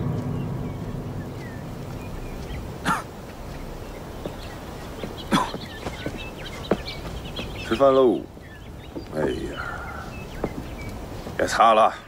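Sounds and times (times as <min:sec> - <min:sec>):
low music tone: 0:00.0 - 0:05.2
faint bird chirps: 0:00.0 - 0:12.0.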